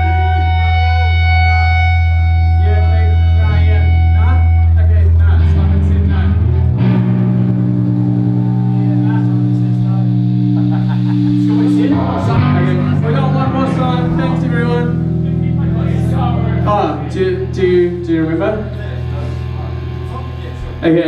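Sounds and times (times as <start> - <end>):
people talking: 0.0 - 6.6, 8.3 - 21.0
droning amplified guitar and bass: 0.0 - 21.0.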